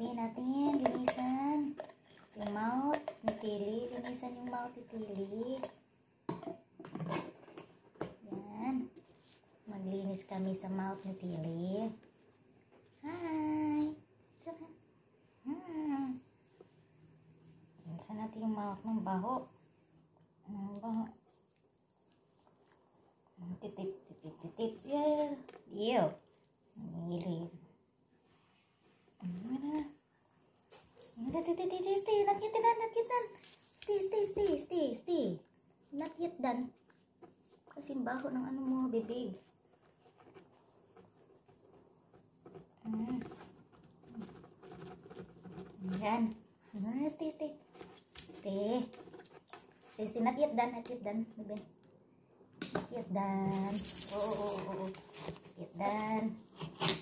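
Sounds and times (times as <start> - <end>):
metallic jingling rattle: 53.7 - 54.9.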